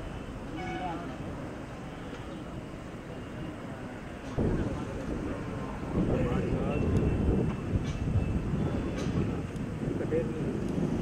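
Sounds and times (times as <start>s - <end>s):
voices talking: 0.0s - 10.8s
low outdoor rumble: 0.0s - 11.0s.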